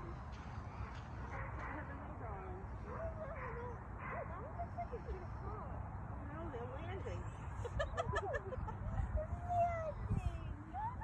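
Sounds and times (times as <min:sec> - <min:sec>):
wind rumbling on microphone: 0:01.7 - 0:11.0.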